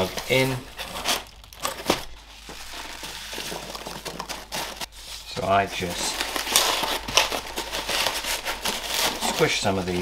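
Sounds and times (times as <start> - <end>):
packing peanuts rustling: 0.0 - 10.0.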